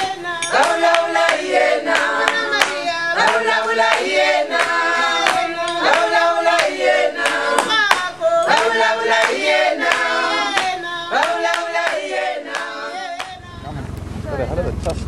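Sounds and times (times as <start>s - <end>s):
group singing: 0.0s - 13.9s
hand clapping: 0.4s - 13.4s
low rumble: 13.3s - 15.0s.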